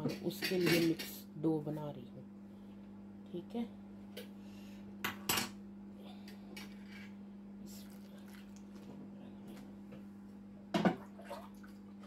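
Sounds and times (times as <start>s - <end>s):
steady low hum: 0.0s - 12.0s
bowl and jug knocking on countertop: 10.7s - 11.0s.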